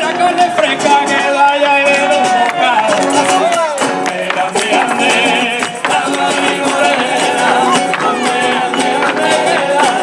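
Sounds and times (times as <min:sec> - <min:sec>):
voices singing: 0:00.0 - 0:10.0.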